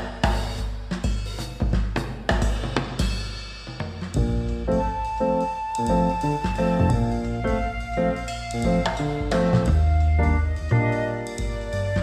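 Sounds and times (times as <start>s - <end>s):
drum-kit beat: 0.0s - 12.0s
held melodic notes: 4.6s - 12.0s.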